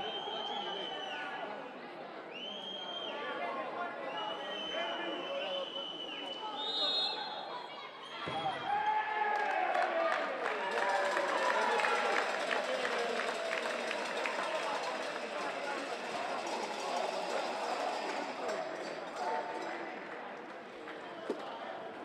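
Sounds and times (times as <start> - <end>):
overlapping shouting voices: 8.6 - 16.0.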